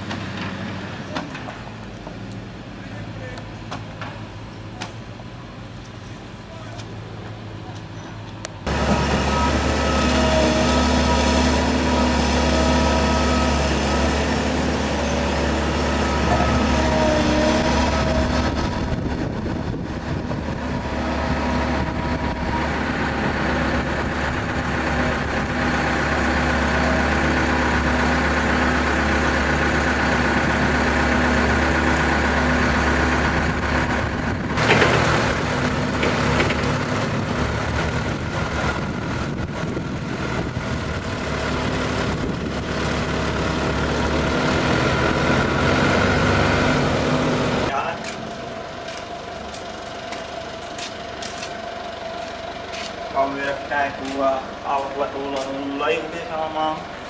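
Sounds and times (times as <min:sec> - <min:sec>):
diesel engines idling: 0:00.0 - 0:57.0.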